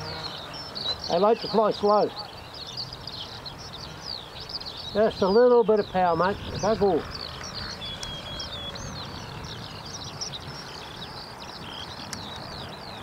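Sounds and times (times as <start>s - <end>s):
birds chirping and calling: 0.0s - 13.0s.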